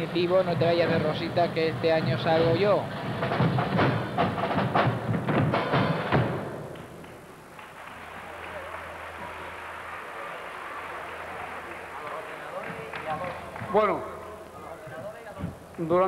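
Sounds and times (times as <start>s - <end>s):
loud rhythmic percussion: 0.0s - 16.0s
audience crowd noise: 6.8s - 16.0s.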